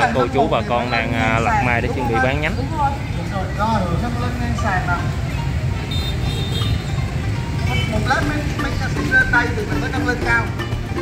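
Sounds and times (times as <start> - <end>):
motorbike traffic rumble: 0.0 - 11.0
loudspeaker sound system: 7.7 - 11.0.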